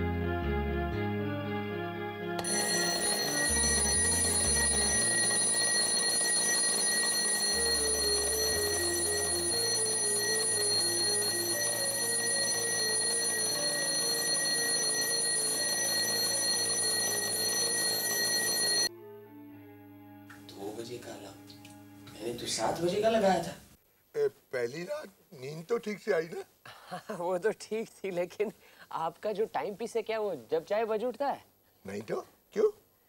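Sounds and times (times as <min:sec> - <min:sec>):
alarm clock ringing: 0:02.4 - 0:18.9.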